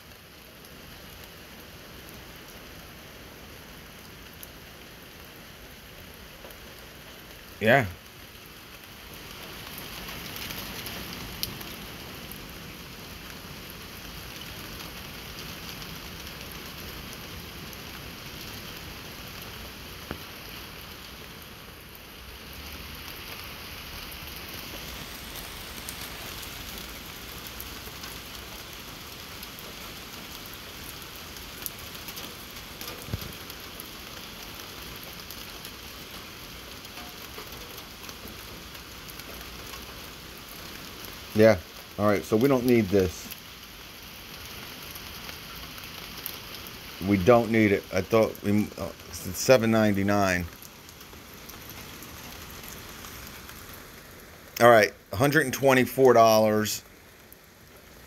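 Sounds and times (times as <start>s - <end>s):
steady hiss: 0.0s - 58.0s.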